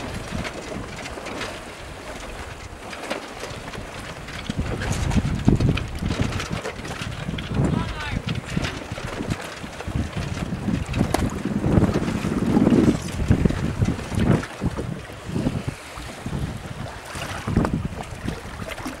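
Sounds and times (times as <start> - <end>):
choppy sea water: 0.0 - 19.0
wind buffeting microphone: 0.0 - 19.0.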